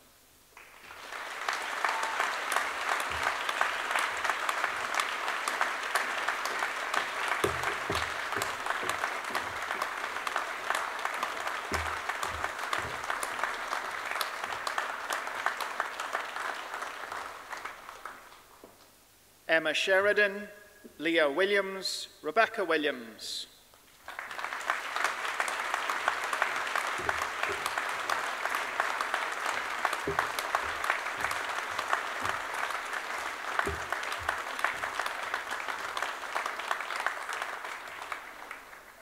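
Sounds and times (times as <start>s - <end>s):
audience applauding: 0.0s - 18.6s, 24.0s - 39.0s.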